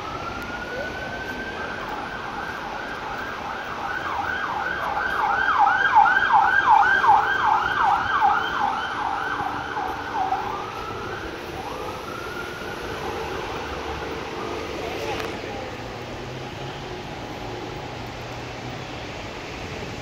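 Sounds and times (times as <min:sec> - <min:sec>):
emergency siren wailing and yelping: 0:00.0 - 0:15.9
street traffic: 0:00.0 - 0:20.0.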